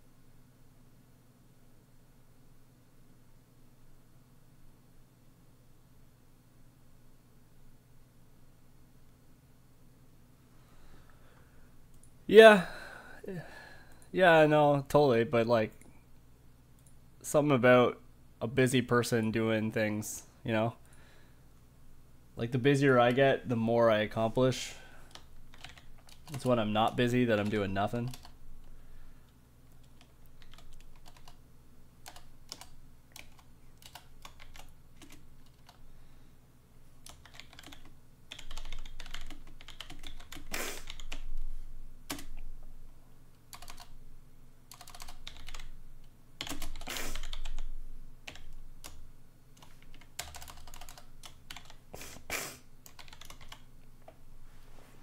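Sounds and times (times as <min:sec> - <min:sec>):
computer keyboard typing: 0:25.1 - 0:28.4, 0:29.7 - 0:31.4, 0:32.0 - 0:35.8, 0:37.0 - 0:41.3, 0:42.1 - 0:42.4, 0:43.5 - 0:44.0, 0:44.7 - 0:45.8, 0:46.4 - 0:49.0, 0:49.6 - 0:51.8, 0:52.8 - 0:53.7.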